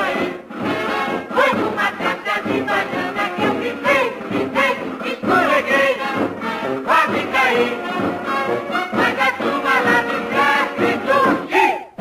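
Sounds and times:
instrumental accompaniment: 0.0s - 12.0s
mixed chorus singing along: 0.0s - 12.0s
woman singing lead: 1.2s - 6.2s, 6.9s - 12.0s.

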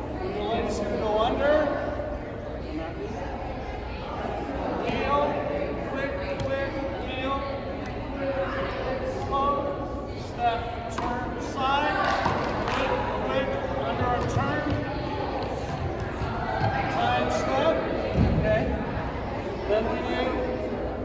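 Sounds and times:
voices echoing in a gymnasium: 0.0s - 21.0s.

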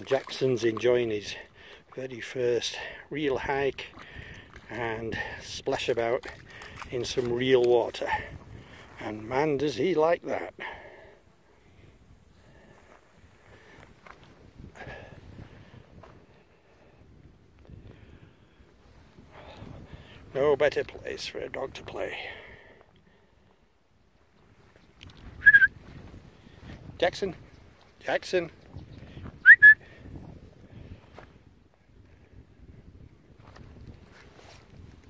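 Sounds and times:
wind rumble on microphone: 3.4s - 9.7s, 11.6s - 22.6s, 24.4s - 35.0s
person whistling to call dog: 25.4s - 25.8s, 29.4s - 29.8s.

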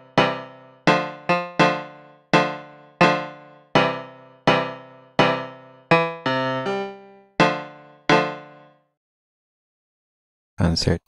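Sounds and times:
piano chords: 0.0s - 8.8s.

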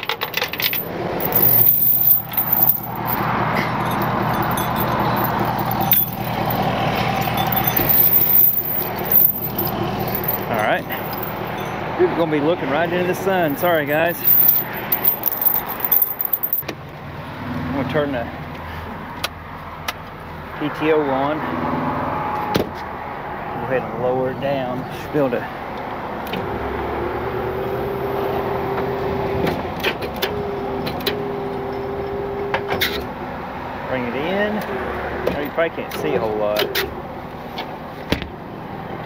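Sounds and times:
steel chain jangling: 0.0s - 11.7s, 13.3s - 16.6s.

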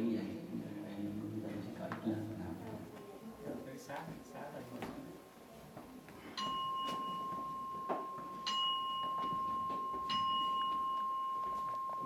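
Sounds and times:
bowl bell ringing: 6.4s - 12.0s.

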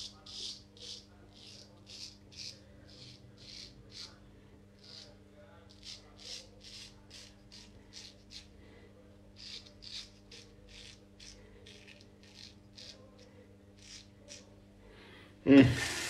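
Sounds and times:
straight razor scraping stubble: 0.0s - 4.2s, 4.8s - 8.6s, 9.4s - 14.5s
steady low hum: 0.0s - 16.0s.

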